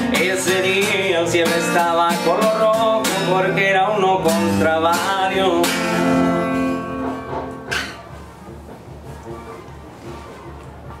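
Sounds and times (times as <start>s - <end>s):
acoustic guitar chord ringing: 0.0s - 8.2s
guitar strum: 0.0s - 8.2s.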